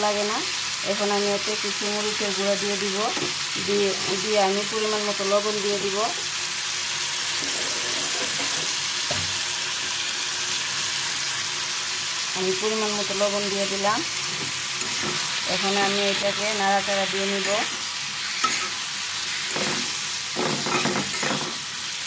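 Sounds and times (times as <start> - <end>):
vegetables sizzling in a pan: 0.0 - 22.0.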